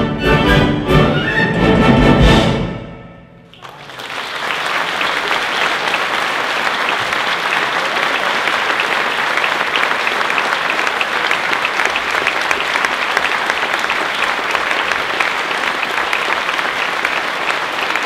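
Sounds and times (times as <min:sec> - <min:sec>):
audience applauding: 0:03.5 - 0:18.0.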